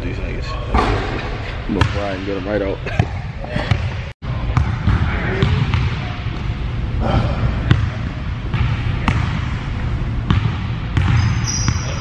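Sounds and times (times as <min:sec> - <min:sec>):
low room noise rumble: 0:00.0 - 0:12.0
basketball bouncing on hardwood floor: 0:10.3 - 0:11.8.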